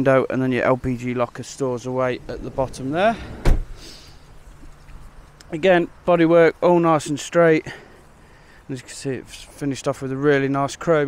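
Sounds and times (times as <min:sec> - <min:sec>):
van sliding door shutting: 0:02.1 - 0:04.2.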